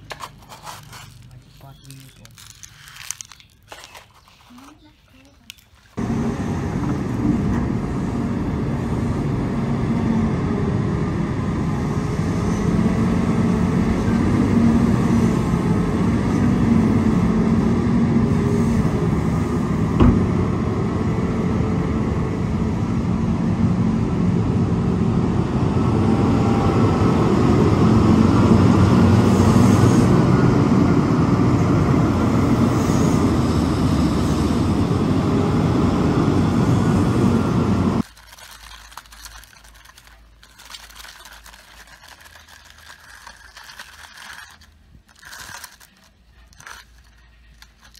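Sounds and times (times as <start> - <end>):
diesel engine and hydraulics running: 6.0 - 38.1.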